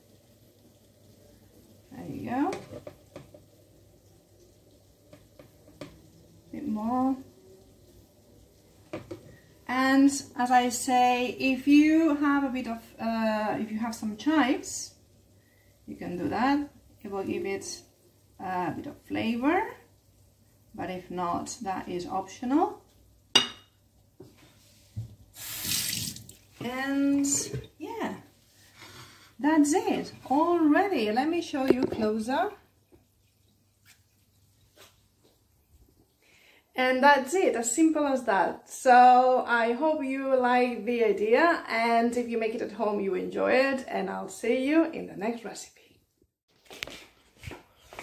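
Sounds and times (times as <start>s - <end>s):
tap water running into sink: 2.3s - 6.5s, 8.4s - 9.6s, 25.0s - 27.8s
spatula tapping ceramic plate: 23.4s - 23.7s.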